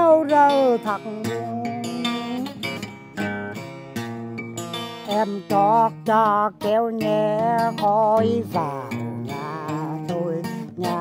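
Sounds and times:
acoustic guitar chords strummed: 0.0s - 11.0s.

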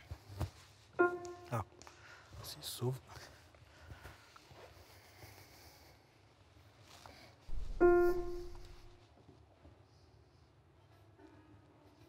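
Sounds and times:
piano note: 1.0s - 1.8s, 7.5s - 9.0s
low thump handling piano: 7.5s - 9.0s.

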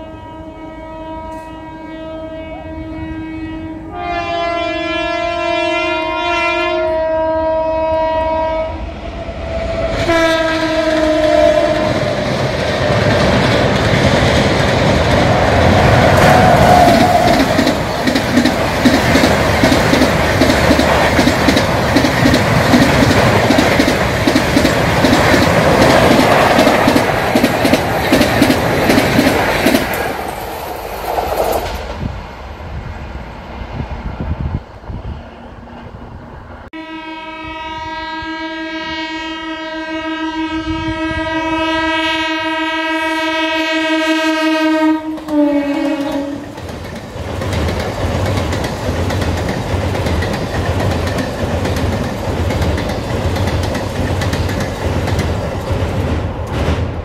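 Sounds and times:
train horn: 0.0s - 12.2s, 15.7s - 17.8s, 36.7s - 46.6s
train coaches rushing past: 8.7s - 36.7s, 44.8s - 57.0s
train wheels clattering on bridge: 11.8s - 32.0s, 45.1s - 57.0s.

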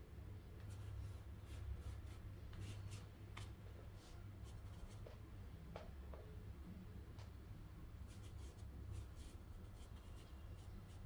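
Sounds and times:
low steady hum: 0.0s - 11.0s
brush scratching on paper: 0.6s - 5.0s, 8.0s - 11.0s.

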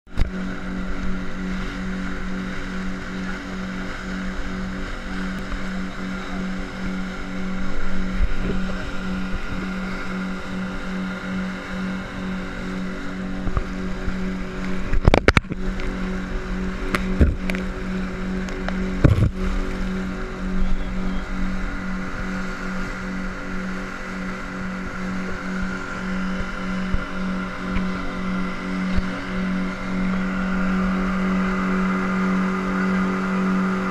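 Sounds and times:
outboard motor running: 0.0s - 33.9s
water rushing along hull: 0.1s - 33.9s.

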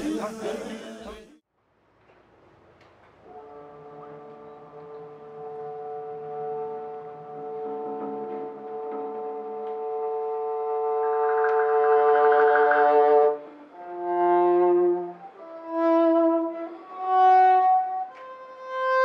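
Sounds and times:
chamber ensemble sustained chord: 10.6s - 13.8s.

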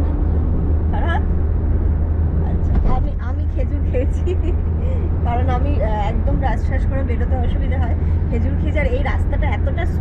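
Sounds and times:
car cabin road rumble: 0.0s - 10.0s
women chatting: 2.4s - 10.0s.

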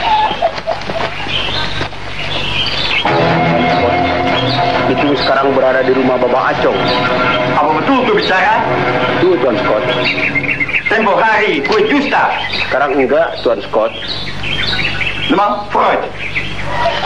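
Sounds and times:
birds chirping: 0.0s - 17.0s
voices talking: 0.0s - 17.0s.

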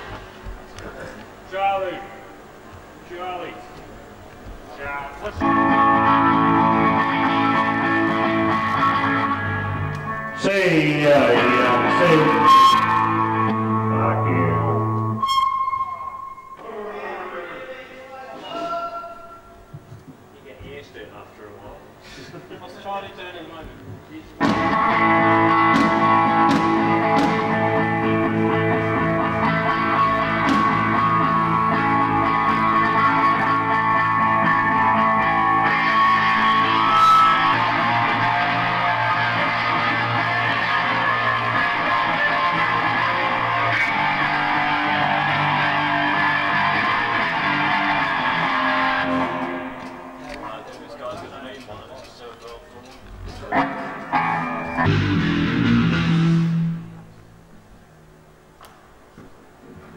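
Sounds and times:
distorted electric guitar chords: 5.4s - 16.6s, 24.4s - 50.2s, 53.5s - 57.5s.

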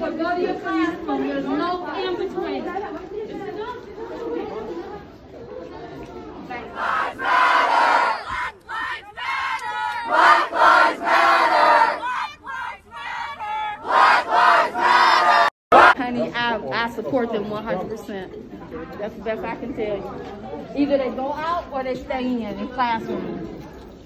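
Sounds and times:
indistinct talking: 0.0s - 24.0s
crowd shouting together: 6.6s - 16.1s.

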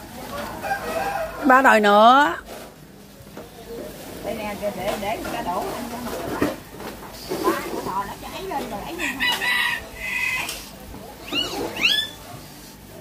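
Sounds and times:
background chatter: 0.0s - 13.0s
rooster crowing: 0.3s - 1.7s, 8.9s - 10.6s.

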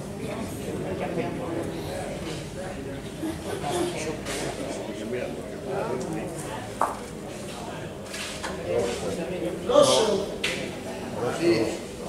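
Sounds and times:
players' voices murmuring: 0.0s - 12.0s.

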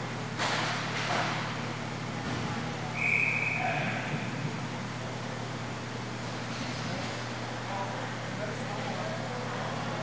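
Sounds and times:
referee's whistle: 2.9s - 3.8s.

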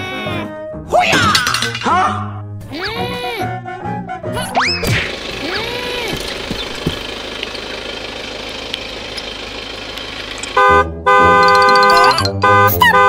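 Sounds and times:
car running: 4.6s - 13.0s
loud multi-pitch horn honk: 10.5s - 13.0s.

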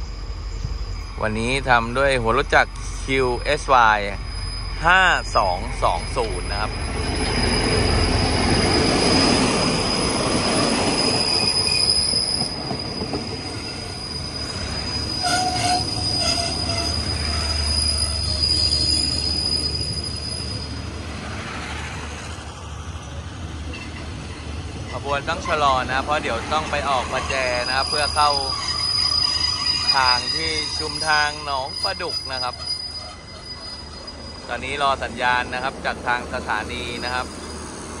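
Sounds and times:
high-pitched brake squeal: 0.0s - 21.3s, 23.7s - 38.0s
diesel locomotive passing: 0.0s - 38.0s
train coaches rumbling: 0.0s - 38.0s.

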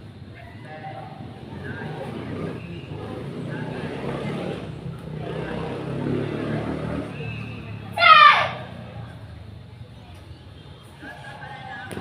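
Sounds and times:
martial arts shout: 7.9s - 8.8s.

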